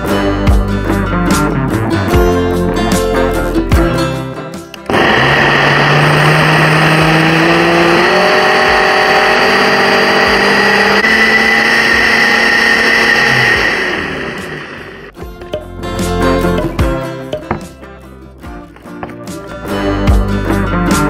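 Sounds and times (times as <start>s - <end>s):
blender running: 4.9s - 15.1s.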